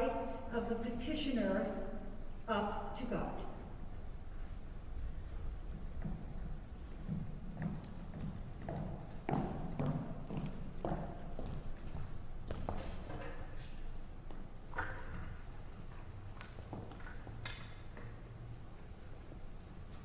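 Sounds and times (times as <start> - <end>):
low hall hum: 0.0 - 20.0
footsteps on wooden stage: 5.0 - 13.6.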